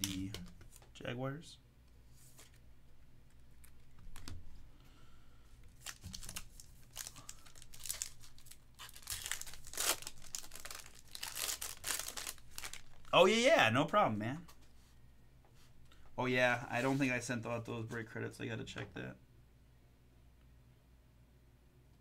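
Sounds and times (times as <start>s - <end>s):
foil wrapper tearing and crinkling: 5.8s - 13.1s.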